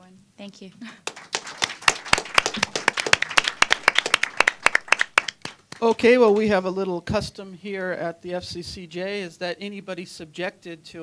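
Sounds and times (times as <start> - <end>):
audience clapping: 1.0 - 6.6.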